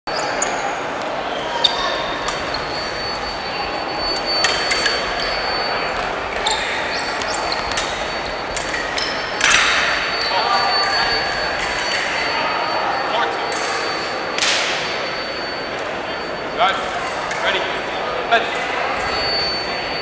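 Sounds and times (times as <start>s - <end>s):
chatter in echoing hall: 0.1s - 20.0s
fencing blades clinking: 1.7s - 12.3s.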